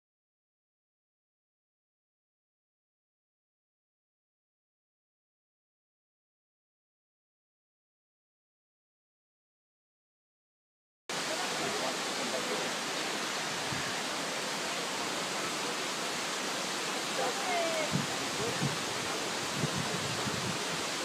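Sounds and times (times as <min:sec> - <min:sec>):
faint voices: 0:11.2 - 0:21.0
steady rushing noise: 0:11.2 - 0:21.0.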